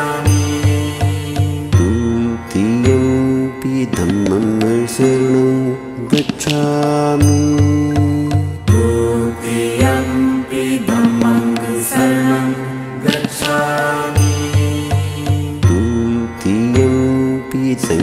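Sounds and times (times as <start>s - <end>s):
low drum beats and sharp strikes: 0.3s - 5.3s, 6.1s - 9.2s.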